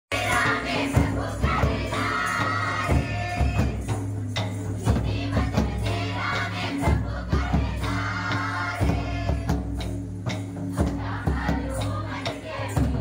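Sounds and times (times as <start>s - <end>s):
drum beats: 0.1s - 13.0s
group singing folk song: 0.1s - 13.0s.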